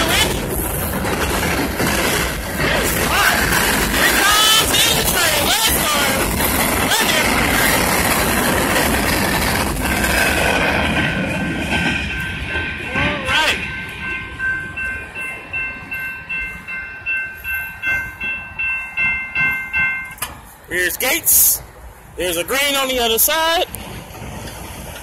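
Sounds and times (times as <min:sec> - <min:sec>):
crossing warning bell ringing: 0:00.0 - 0:23.8
freight train rolling: 0:00.0 - 0:25.0.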